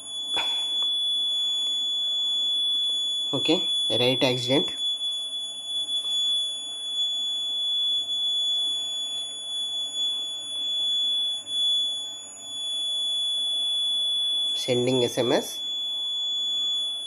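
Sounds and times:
high-pitched buzzer alarm: 0.0s - 17.0s.

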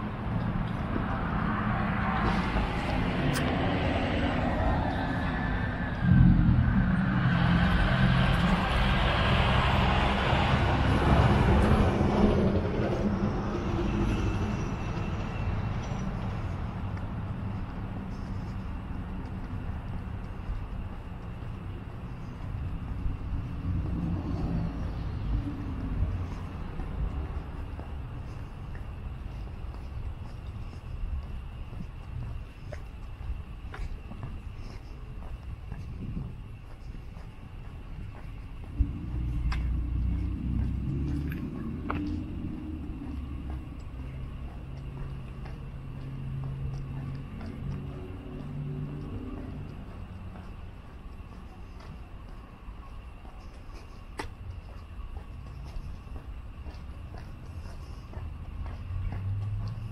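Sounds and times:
motor vehicle driving past: 0.0s - 17.1s, 38.6s - 50.6s
street background noise: 0.0s - 59.9s.

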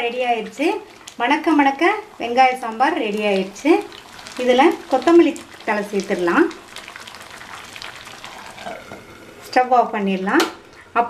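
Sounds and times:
faint bubbling hiss of simmering: 0.0s - 11.0s.

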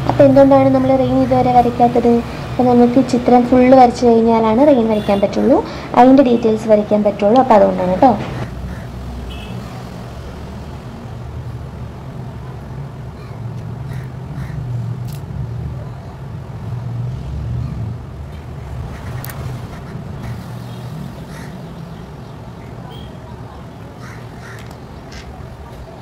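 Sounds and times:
low rumbling hum: 16.6s - 22.1s.

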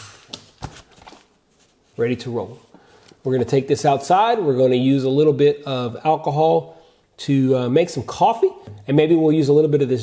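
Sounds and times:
fabric rustling: 0.7s - 2.7s.

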